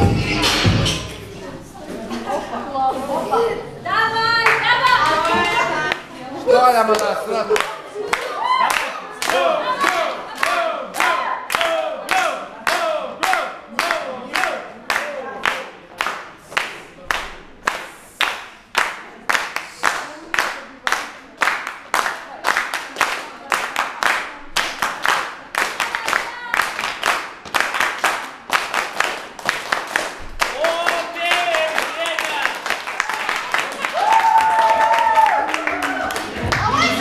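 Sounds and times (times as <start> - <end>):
crowd voices: 0.0 - 18.2, 33.0 - 37.0
crowd clapping in unison: 6.8 - 37.0.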